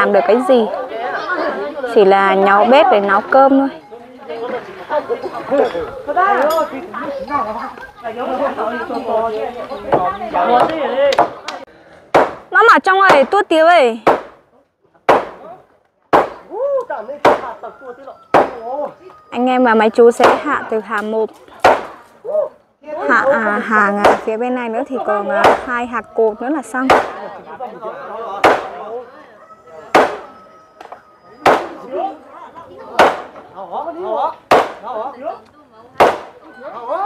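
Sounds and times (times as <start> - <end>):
voices talking: 0.0 - 37.0.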